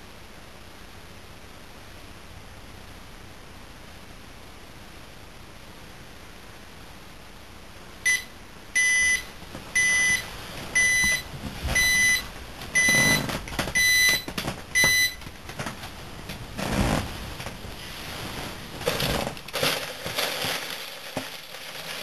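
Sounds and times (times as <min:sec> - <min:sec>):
electronic alarm beeping: 0:08.1 - 0:15.2
bedding rustling: 0:09.3 - 0:20.4.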